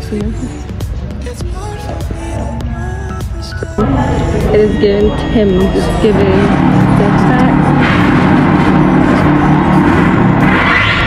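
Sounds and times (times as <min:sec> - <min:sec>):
music with held low notes: 0:00.0 - 0:10.6.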